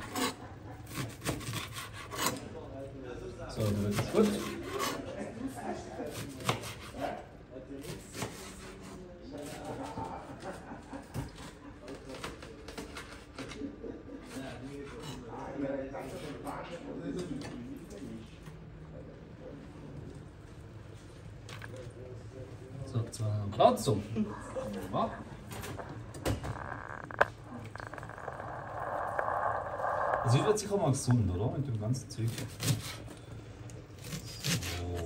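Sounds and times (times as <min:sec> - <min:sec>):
low background talk: 0:00.0 - 0:35.0.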